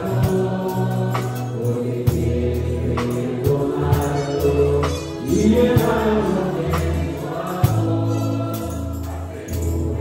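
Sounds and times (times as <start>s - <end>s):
amplified band: 0.0s - 10.0s
group singing a hymn: 0.0s - 10.0s.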